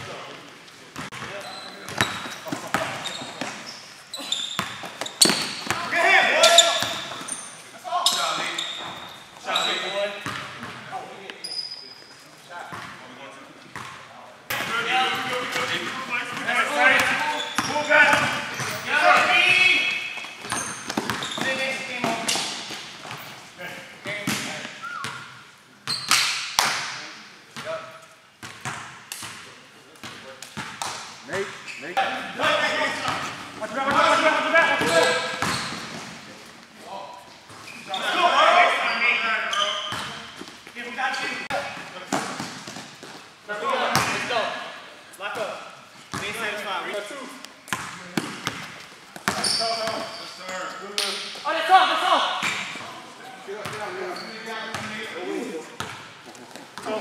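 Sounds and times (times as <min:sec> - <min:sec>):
basketball bouncing on court: 0:01.0 - 0:03.6, 0:04.2 - 0:07.4, 0:10.2 - 0:10.9, 0:13.7 - 0:14.7, 0:15.5 - 0:23.3, 0:34.8 - 0:36.2, 0:39.9 - 0:40.6, 0:47.7 - 0:50.1, 0:54.7 - 0:54.9, 0:55.8 - 0:56.1
players calling out: 0:01.3 - 0:10.3.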